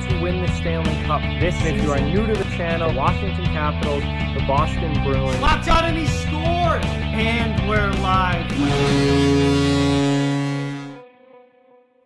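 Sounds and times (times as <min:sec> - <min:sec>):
loud horn-like chord: 0:08.4 - 0:11.3.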